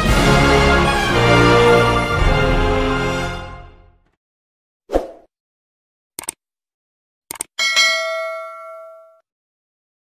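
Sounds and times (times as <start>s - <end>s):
notification bell ding: 7.6s - 9.2s.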